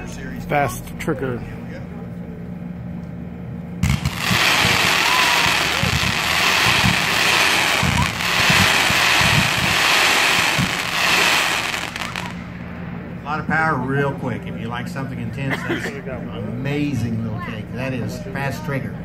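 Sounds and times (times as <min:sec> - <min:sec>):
low firework thumps: 0:03.8 - 0:11.0
firework volley rushing: 0:03.8 - 0:13.9.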